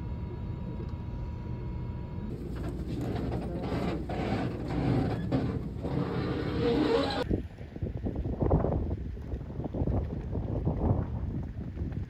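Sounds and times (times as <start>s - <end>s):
boat engine drone: 0.0s - 7.2s
thin steady whine: 0.0s - 7.2s
passengers moving about: 2.3s - 7.2s.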